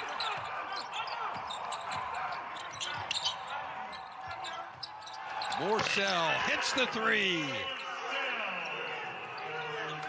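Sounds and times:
sneakers squeaking on floor: 0:00.0 - 0:06.0.

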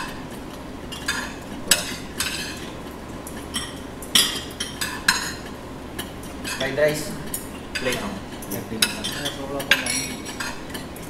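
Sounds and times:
spoons clinking against dishes: 0:00.9 - 0:10.9.

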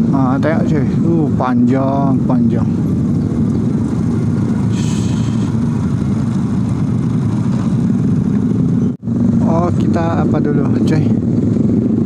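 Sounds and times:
motorcycle engines running: 0:00.0 - 0:12.0.

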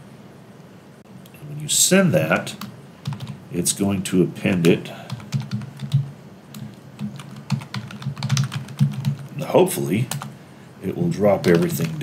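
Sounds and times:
computer keyboard key clicks: 0:05.1 - 0:09.3.

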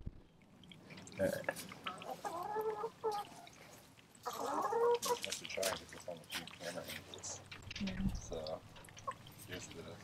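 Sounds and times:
chicken clucking: 0:01.4 - 0:07.4.

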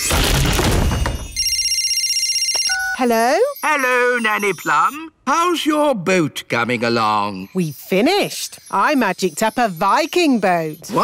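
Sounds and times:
cartoon mobile phone ringing: 0:01.0 - 0:05.4
phone answer beep and click: 0:02.3 - 0:03.0.

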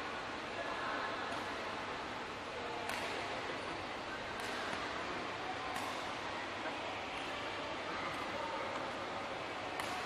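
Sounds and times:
racket striking shuttlecock: 0:02.8 - 0:03.2, 0:05.7 - 0:06.0, 0:09.8 - 0:10.0.

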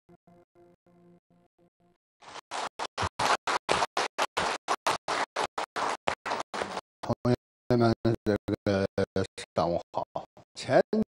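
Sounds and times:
audience applauding: 0:02.2 - 0:06.8.

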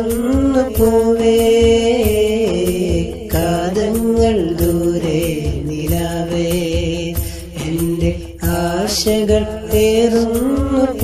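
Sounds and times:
devotional song over steady beat: 0:00.0 - 0:11.0.

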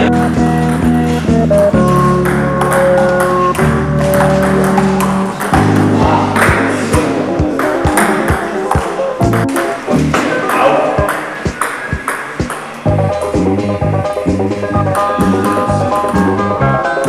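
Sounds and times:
background music: 0:00.0 - 0:17.0
table tennis ball clicking: 0:01.8 - 0:06.6, 0:15.2 - 0:16.4.

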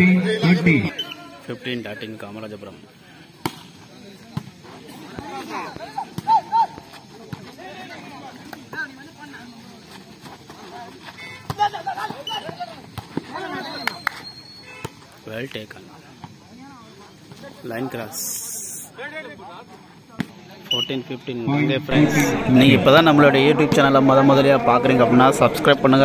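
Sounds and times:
people shouting: 0:05.1 - 0:06.9, 0:11.2 - 0:14.0.

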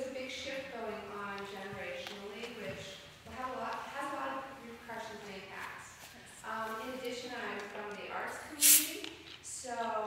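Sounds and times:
short sharp hiss: 0:08.6 - 0:09.1.

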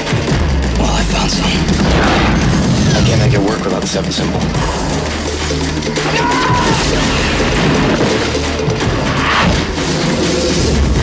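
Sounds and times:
dramatic music: 0:00.0 - 0:11.0
crashing booming sound effects: 0:01.7 - 0:03.5.

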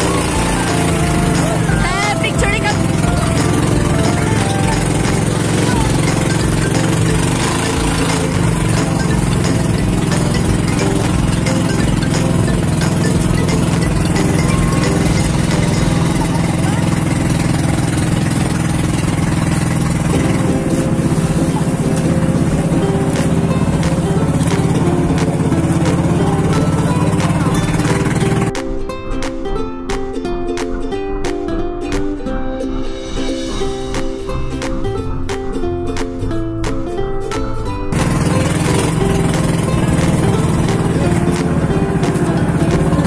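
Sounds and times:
boat engine droning: 0:00.0 - 0:28.8, 0:37.9 - 0:43.0.

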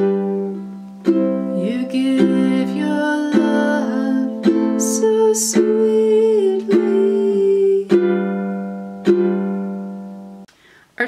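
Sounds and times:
ukulele strums ringing: 0:00.0 - 0:10.4.

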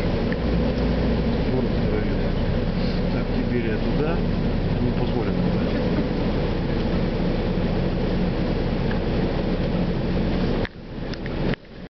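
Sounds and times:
engine and road noise inside coach: 0:00.0 - 0:11.9.

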